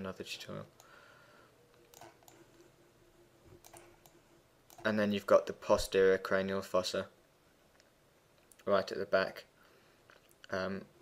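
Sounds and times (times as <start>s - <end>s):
computer mouse clicks: 1.7s - 2.7s, 3.5s - 4.9s.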